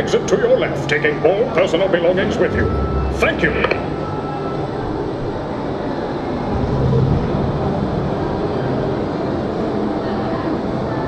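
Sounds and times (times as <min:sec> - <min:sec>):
ride car rumbling on track: 0:00.0 - 0:11.0
low hum: 0:01.6 - 0:09.2.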